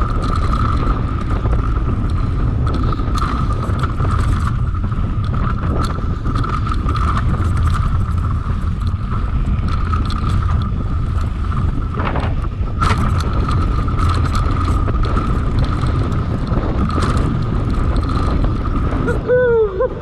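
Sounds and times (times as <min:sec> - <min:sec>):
bike rattles and clicks: 0:00.0 - 0:20.0
bike tyre noise: 0:00.0 - 0:20.0
wind rumble on microphone: 0:00.0 - 0:20.0.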